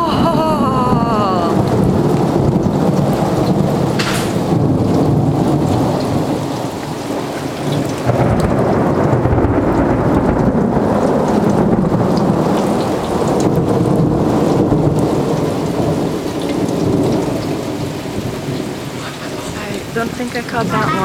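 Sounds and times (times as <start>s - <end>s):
steady rain falling: 0.0s - 21.0s
thunder rumbling: 0.0s - 21.0s.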